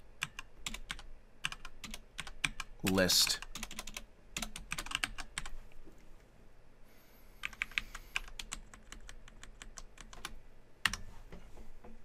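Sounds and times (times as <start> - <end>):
typing on computer keyboard: 0.2 - 5.5, 7.4 - 11.0.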